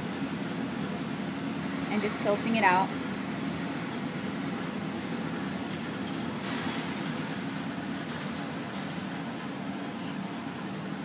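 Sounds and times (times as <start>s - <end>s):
blower fan hum: 0.0s - 11.0s.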